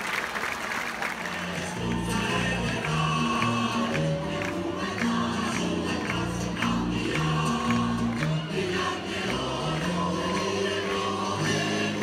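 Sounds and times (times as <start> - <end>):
large choir singing: 1.1 - 12.0.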